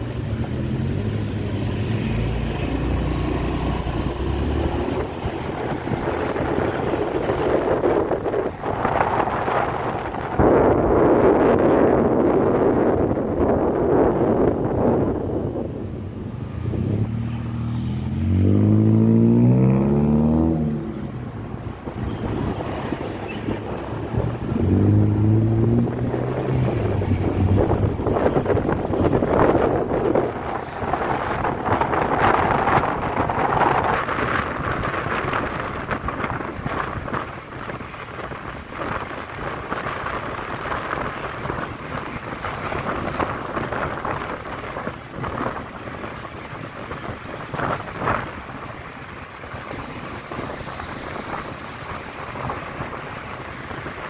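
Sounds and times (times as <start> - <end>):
wind and road noise: 0.0 - 54.0
motorbike engine revving: 16.7 - 21.0.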